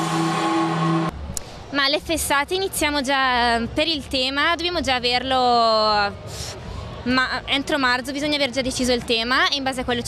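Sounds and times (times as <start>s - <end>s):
outdoor crowd noise: 0.0s - 10.0s
woman speaking: 1.8s - 6.1s, 7.1s - 10.0s.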